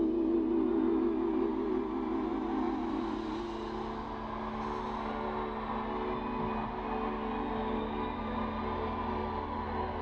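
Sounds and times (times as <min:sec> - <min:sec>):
live stage music held chord: 0:00.0 - 0:10.0.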